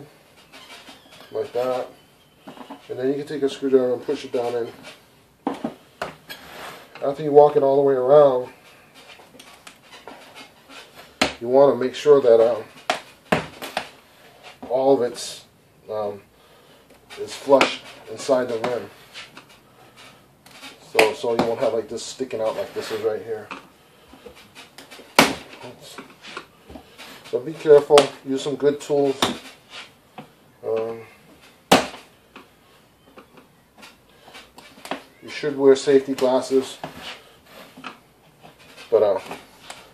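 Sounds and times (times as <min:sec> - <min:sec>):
rubber tire rubbing on rim: 0:17.2 - 0:23.5.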